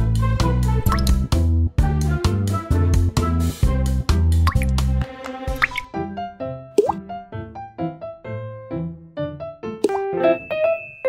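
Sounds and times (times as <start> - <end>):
upbeat children's music: 0.0 - 6.1.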